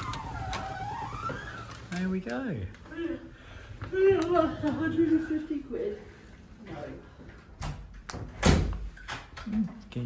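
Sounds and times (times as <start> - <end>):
door hinge squeaking: 0.0 - 1.9.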